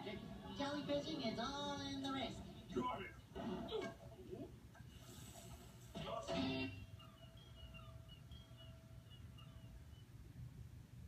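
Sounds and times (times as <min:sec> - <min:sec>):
faint held tone from tv: 0:00.0 - 0:11.0
low room hum: 0:00.0 - 0:11.0
faint high chirps: 0:06.6 - 0:10.6.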